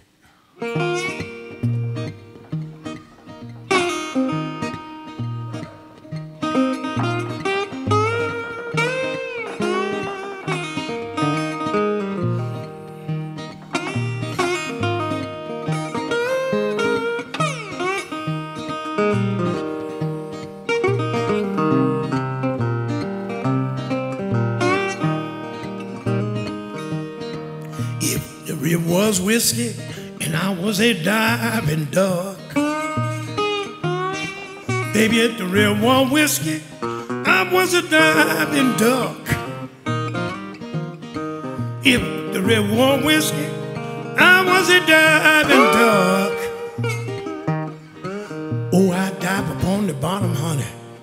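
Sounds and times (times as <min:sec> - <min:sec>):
acoustic guitars playing blues: 0:00.0 - 0:51.0.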